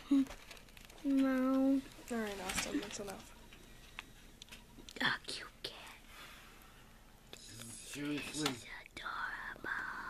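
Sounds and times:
breathy whisper: 5.0 - 10.0.

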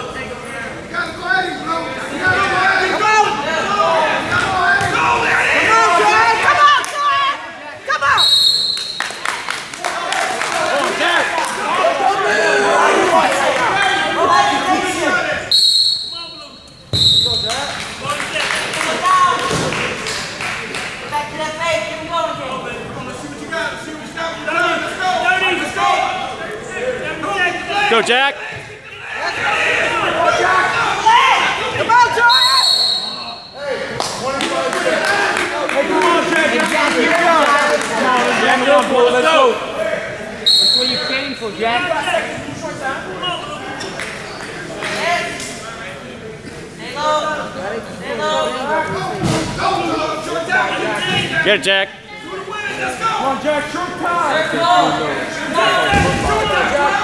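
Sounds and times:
spectators' voices: 0.0 - 57.0
referee's whistle blast: 8.1 - 9.2, 15.5 - 17.7, 32.2 - 33.6, 40.5 - 41.4.

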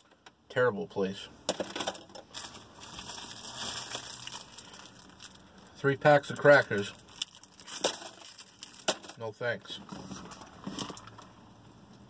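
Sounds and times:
plastic wrapper crinkling: 2.2 - 9.2.

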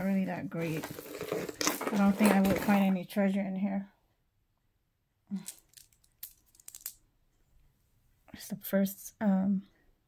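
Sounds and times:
bracelet clicking and clinking: 5.4 - 7.0.

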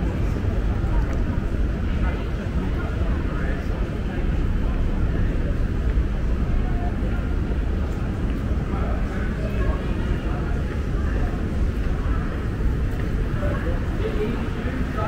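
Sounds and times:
low street rumble: 0.0 - 15.0.

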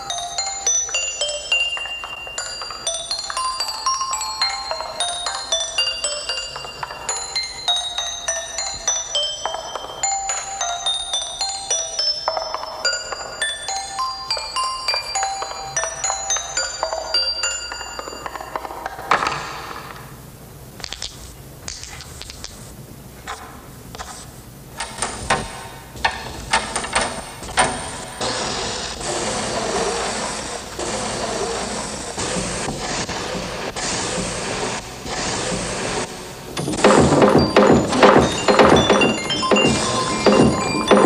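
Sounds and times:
glockenspiel-like mallet notes: 0.0 - 19.1, 36.6 - 41.0.

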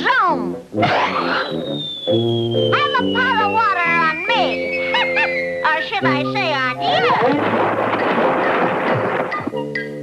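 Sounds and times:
background music: 0.0 - 10.0
cartoon whoosh: 0.8 - 4.6
falling whistle: 0.8 - 5.6.

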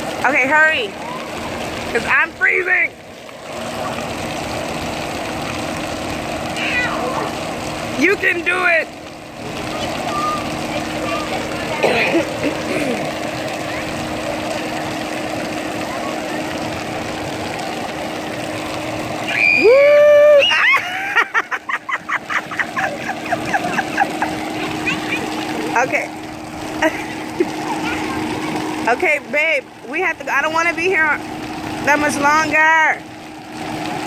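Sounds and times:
outdoor hum: 0.0 - 34.0
rhythmic laughter: 20.8 - 25.3.

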